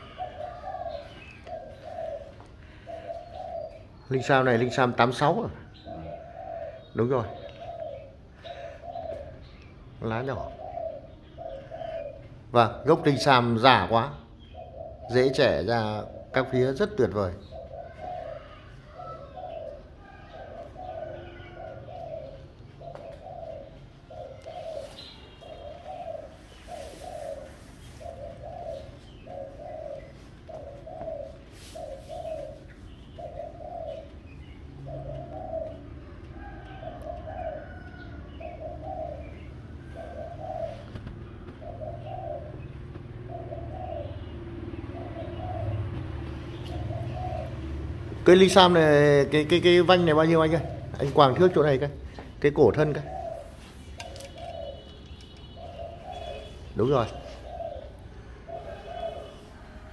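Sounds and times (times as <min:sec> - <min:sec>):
dove cooing: 0:00.0 - 0:59.9
small birds chirping: 0:00.0 - 0:59.9.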